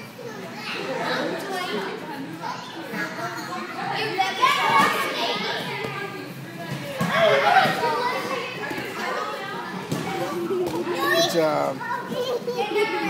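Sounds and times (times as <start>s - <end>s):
children shouting and chattering: 0.0s - 13.0s.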